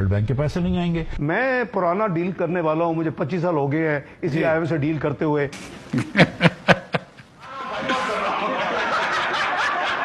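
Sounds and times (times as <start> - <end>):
room of people laughing: 5.6 - 10.0
man laughing: 5.9 - 10.0.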